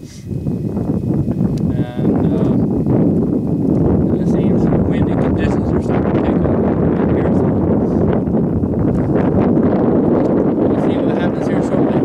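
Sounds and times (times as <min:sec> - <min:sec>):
wind buffeting microphone: 0:00.0 - 0:12.0.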